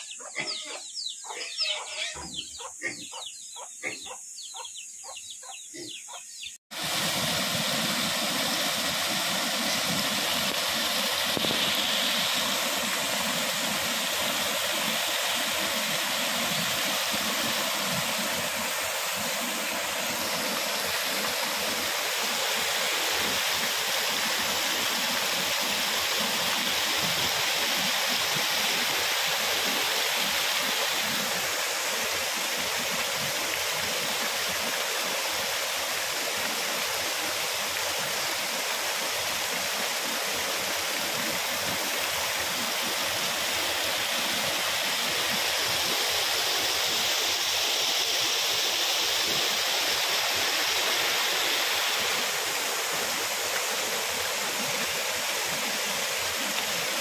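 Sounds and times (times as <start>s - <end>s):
water rushing over weir: 6.7s - 57.0s.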